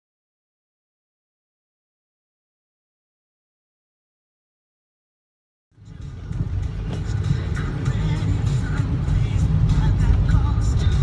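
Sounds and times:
road and engine rumble: 5.7s - 11.0s
tyres hissing on wet road: 6.0s - 11.0s.

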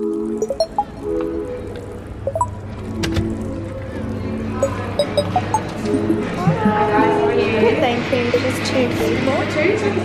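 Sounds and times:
people speaking: 6.4s - 10.0s.

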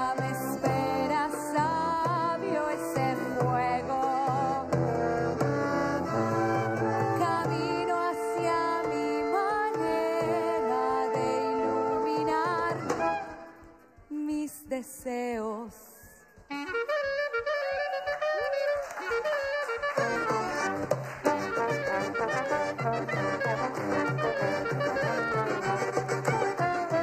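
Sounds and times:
trombone: 0.0s - 13.8s, 16.5s - 27.0s
clarinet melody: 0.0s - 14.1s, 16.4s - 27.0s
small band playing: 0.0s - 14.1s, 16.4s - 27.0s
accordion: 0.0s - 15.0s, 16.4s - 27.0s.

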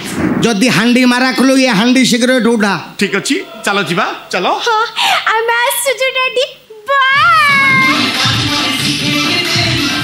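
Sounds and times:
music: 7.2s - 10.0s.

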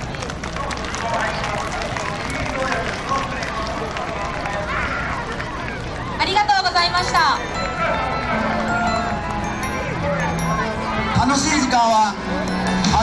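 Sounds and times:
crowd applauding: 0.0s - 10.5s
crowd voices: 0.0s - 13.0s.

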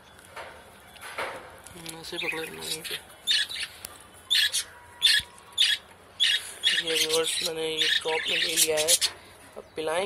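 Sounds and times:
budgerigar squawking: 4.3s - 9.1s.

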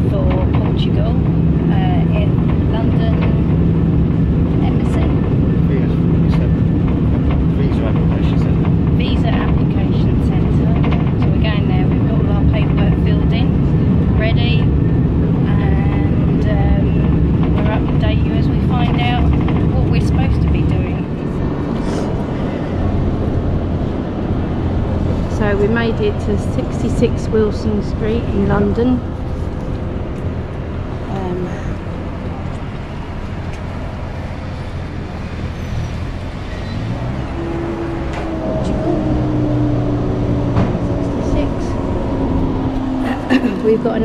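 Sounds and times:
street sound: 0.0s - 44.0s
train rumbling: 0.0s - 44.0s
voices talking: 4.4s - 14.8s, 15.4s - 23.0s, 25.3s - 29.1s, 31.1s - 32.8s, 36.7s - 44.0s.

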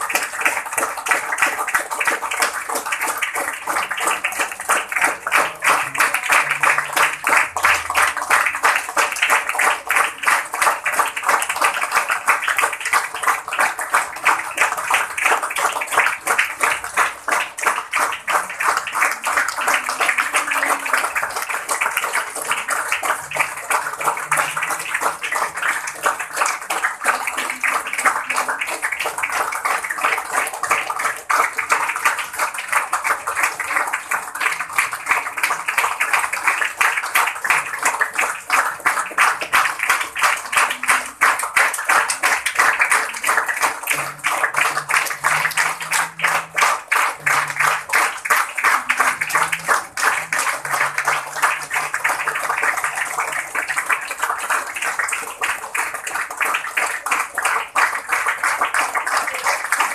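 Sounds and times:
group clapping: 0.0s - 59.9s.

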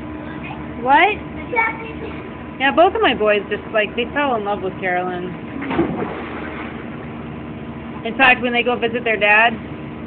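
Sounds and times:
steady background hum: 0.0s - 10.0s
even wash of noise: 5.6s - 7.3s.

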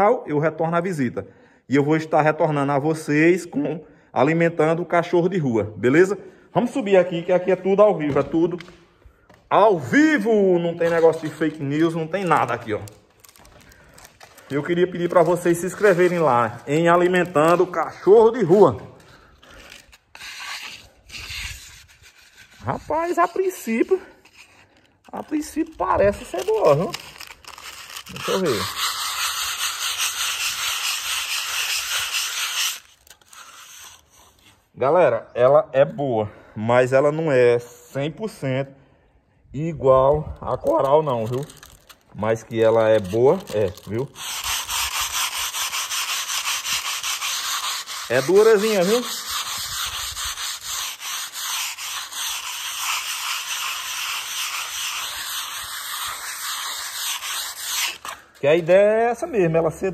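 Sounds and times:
sandpaper rasping on wall: 10.7s - 12.7s, 14.7s - 34.6s, 42.6s - 58.5s.

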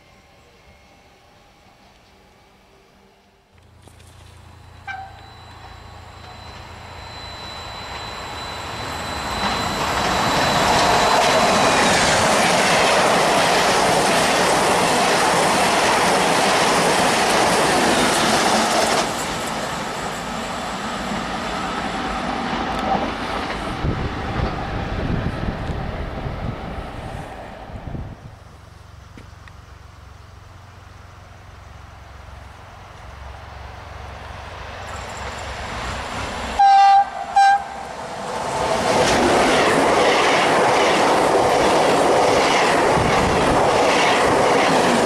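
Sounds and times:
thin high tone: 0.0s - 17.0s
passenger train passing at speed: 0.0s - 45.0s
train wheel clatter: 7.8s - 20.1s, 38.4s - 45.0s.

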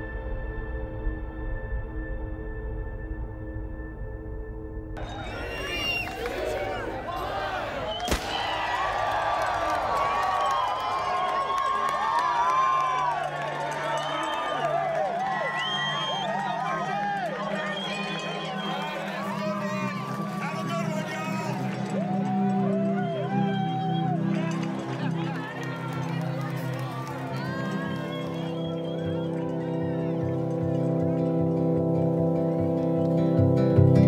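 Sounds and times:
crowd cheering and shouting: 5.0s - 31.2s.

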